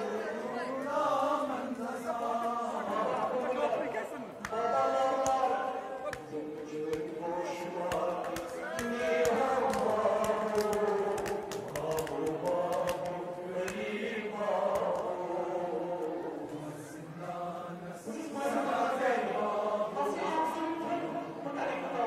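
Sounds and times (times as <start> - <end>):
crowd of men chanting: 0.0 - 22.0
sharp slaps: 4.4 - 5.5, 6.1 - 7.2, 7.9 - 13.9.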